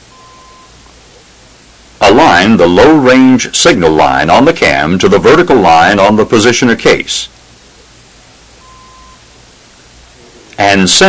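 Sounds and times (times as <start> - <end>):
steady hiss: 0.0 - 11.0
short faint beep: 0.1 - 0.7, 8.6 - 9.2.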